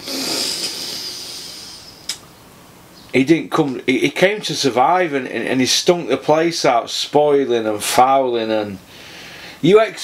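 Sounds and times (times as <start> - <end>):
man exhaling with a hiss: 0.0 - 2.2.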